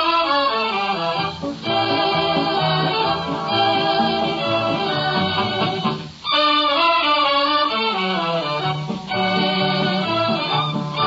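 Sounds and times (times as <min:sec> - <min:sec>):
orchestra playing: 0:00.0 - 0:11.0.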